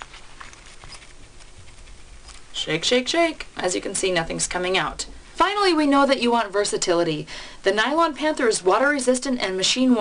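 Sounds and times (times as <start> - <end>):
wallet rustling: 0.0 - 2.5.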